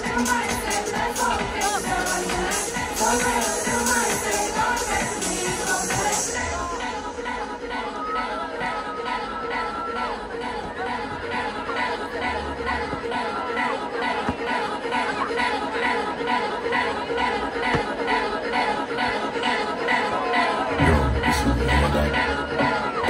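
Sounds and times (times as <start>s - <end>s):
electronic dance music: 0.0s - 8.0s, 20.6s - 23.0s
crowd voices: 0.0s - 23.0s
heavy bass: 20.7s - 23.0s.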